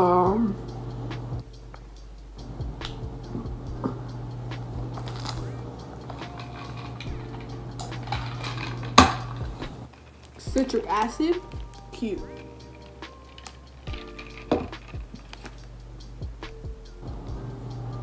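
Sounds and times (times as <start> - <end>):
steady low hum: 0.0 - 18.0
plastic packet crinkling: 5.0 - 5.5, 8.2 - 11.8, 12.4 - 15.6.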